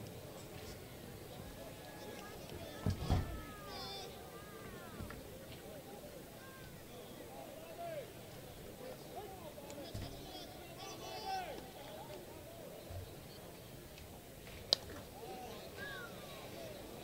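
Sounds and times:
distant crowd chatter: 0.0s - 17.0s.

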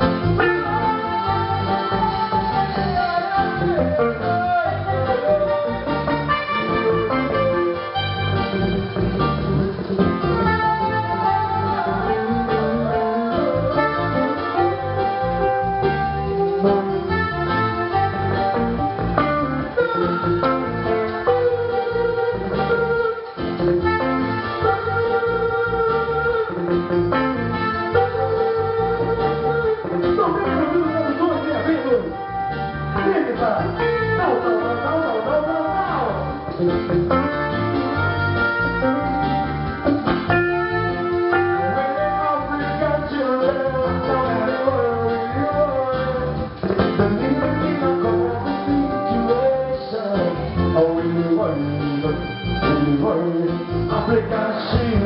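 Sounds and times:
electric guitar: 0.0s - 55.0s
reggae band playing: 0.0s - 55.0s.

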